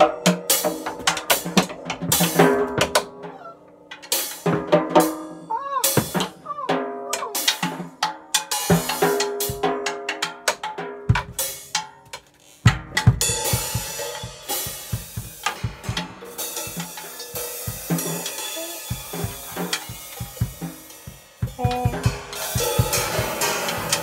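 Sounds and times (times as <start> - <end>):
drum strokes with sticks: 0.0 - 24.0.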